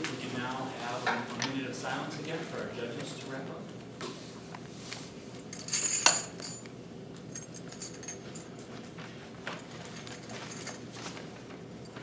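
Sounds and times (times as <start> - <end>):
metallic clinks and jingle: 5.5 - 6.7, 7.3 - 8.6, 9.6 - 10.9.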